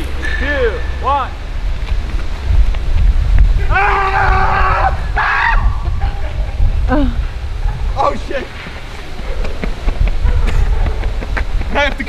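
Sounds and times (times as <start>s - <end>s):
wind rumbling on microphone: 0.0s - 12.0s
man shouting: 3.6s - 5.6s.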